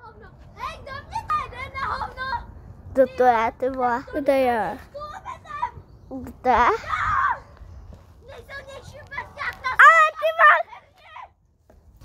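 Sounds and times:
children shouting excitedly: 0:00.0 - 0:02.5, 0:04.9 - 0:05.8, 0:06.6 - 0:07.6, 0:08.2 - 0:11.4.

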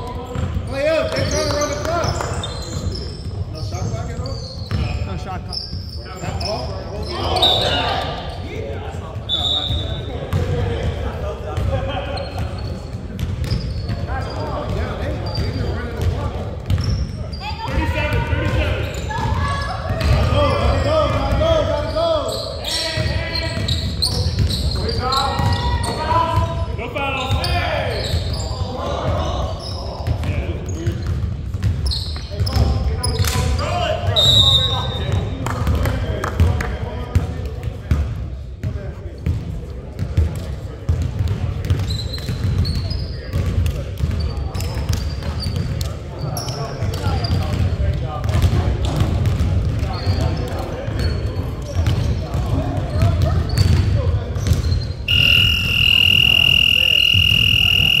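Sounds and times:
players' indistinct voices: 0:00.0 - 0:58.0
sneaker squeaks on hardwood: 0:00.3 - 0:08.6, 0:09.2 - 0:10.4, 0:12.2 - 0:35.3, 0:41.6 - 0:47.8, 0:48.4 - 0:58.0
basketball bouncing: 0:13.0 - 0:14.0, 0:14.6 - 0:17.0, 0:31.0 - 0:32.8, 0:40.0 - 0:45.7, 0:47.3 - 0:51.0, 0:51.7 - 0:58.0.

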